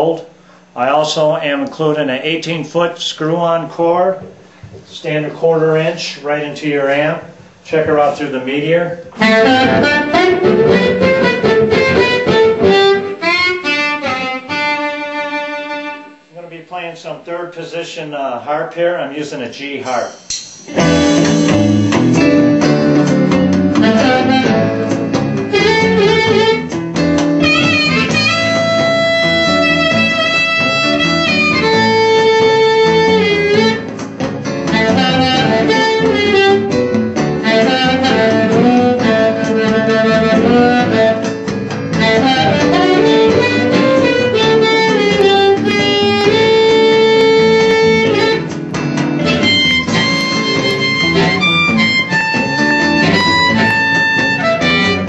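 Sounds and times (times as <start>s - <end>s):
amplified harmonica with bent notes: 9.1s - 16.3s, 20.7s - 55.0s.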